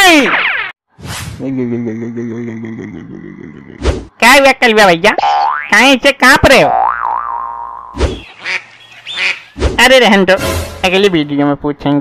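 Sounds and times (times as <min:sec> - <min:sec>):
cartoon boing: 0:06.6 - 0:08.0.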